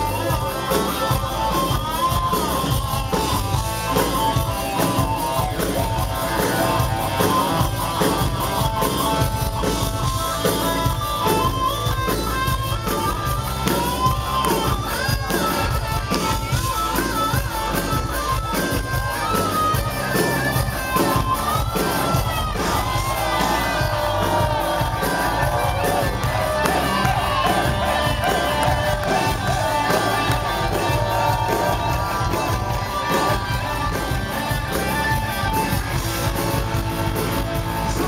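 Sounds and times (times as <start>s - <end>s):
bass guitar: 0.0s - 38.0s
electric guitar: 0.0s - 38.0s
drum beat: 18.8s - 38.0s.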